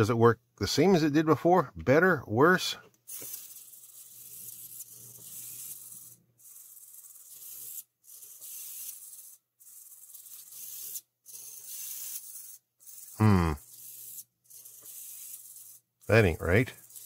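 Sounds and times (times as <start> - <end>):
servo motor whirring buzz: 3.1 - 17.0.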